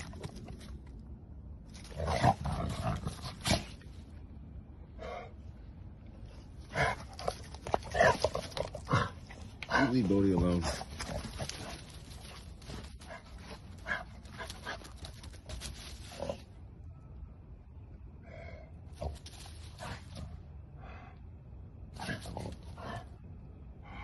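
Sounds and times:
dogs growling and grunting: 1.8 - 3.9, 6.6 - 10.0, 21.9 - 23.2
paws scuffling through wood chips: 9.8 - 16.5.

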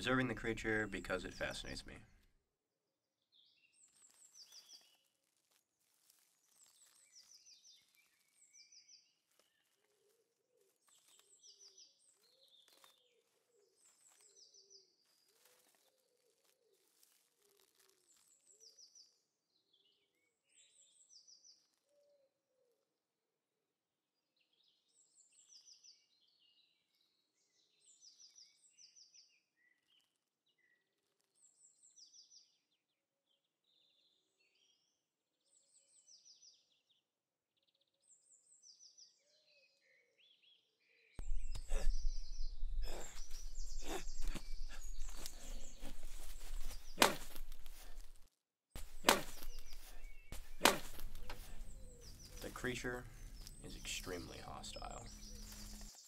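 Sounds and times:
high bird chirps: 41.2 - 47.9, 48.8 - 56.0
lower bird calls: 41.2 - 48.2, 48.8 - 56.0.

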